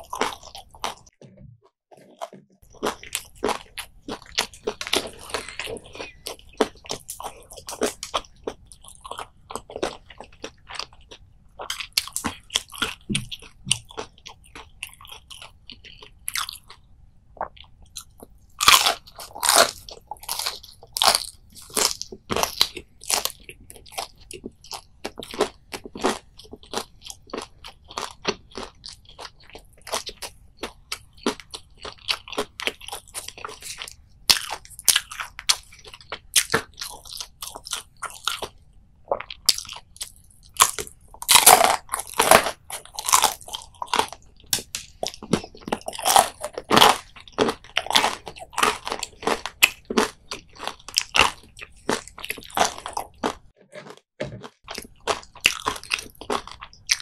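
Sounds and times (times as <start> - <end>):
crunchy fried fish chewing: 0.0 - 1.1, 1.9 - 57.0.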